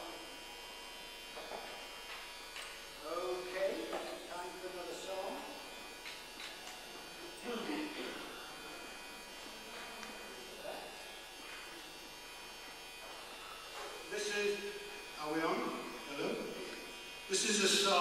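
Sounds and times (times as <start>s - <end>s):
electrical buzz and hiss: 0.0s - 18.0s.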